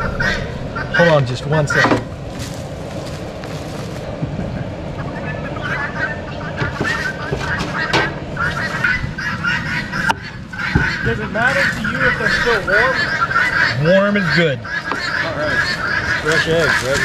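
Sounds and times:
fowl honking calls: 0.0s - 17.0s
steady low background noise: 0.0s - 17.0s.

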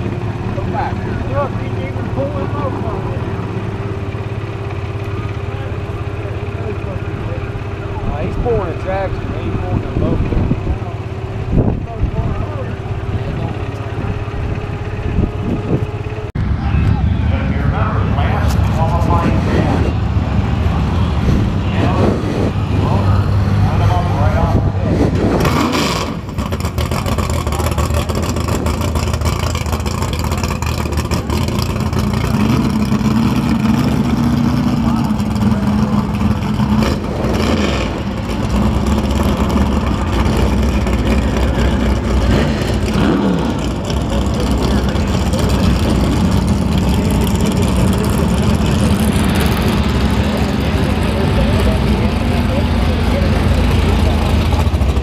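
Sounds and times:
car engines idling: 0.0s - 55.0s.

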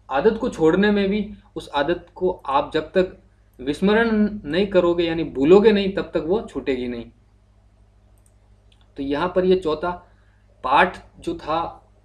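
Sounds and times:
low electrical hum: 0.0s - 12.0s
computer mouse clicks: 8.1s - 9.0s.

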